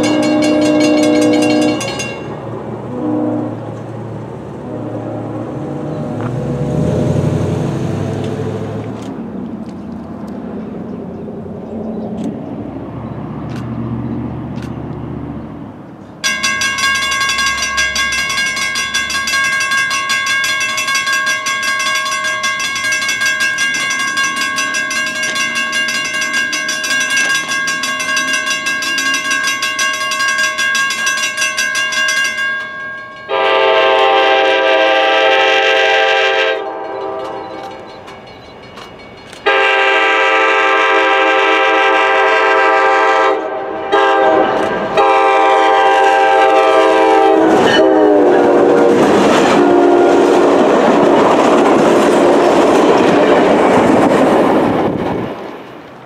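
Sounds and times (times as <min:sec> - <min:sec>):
train air horn blasts: 0:00.0 - 0:02.0, 0:02.9 - 0:03.8, 0:04.6 - 0:05.9, 0:33.3 - 0:37.7, 0:39.4 - 0:50.6
train wheels clattering on rails: 0:00.0 - 0:02.6, 0:16.2 - 0:34.8, 0:36.6 - 0:40.4, 0:44.0 - 0:56.0.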